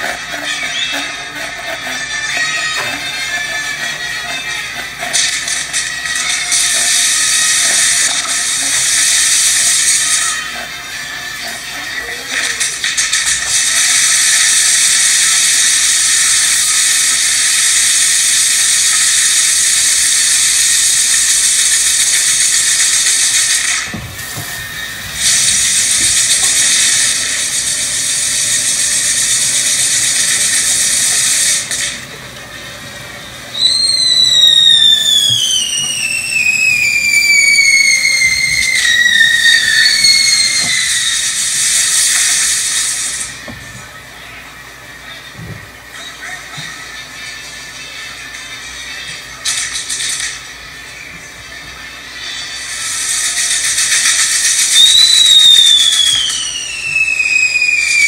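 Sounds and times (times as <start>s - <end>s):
fireworks hissing: 0.0s - 58.0s
firework whistle sliding down: 5.1s - 10.7s, 12.4s - 32.1s, 33.4s - 43.7s, 52.3s - 58.0s.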